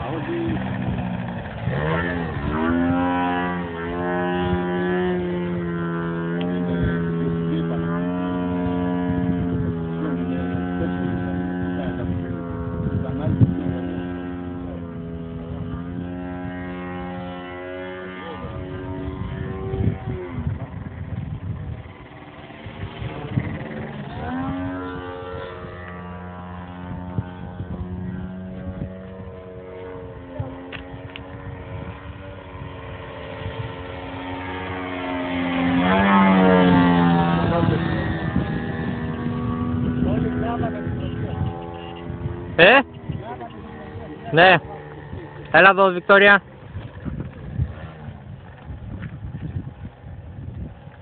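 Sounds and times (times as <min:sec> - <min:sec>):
model plane engine and propeller: 0:00.0 - 0:51.0.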